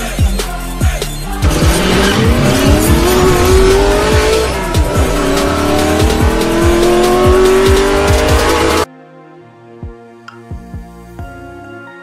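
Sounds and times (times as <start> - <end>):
electronic hip-hop music: 0.0 - 8.9
race car engine revving: 1.3 - 8.9.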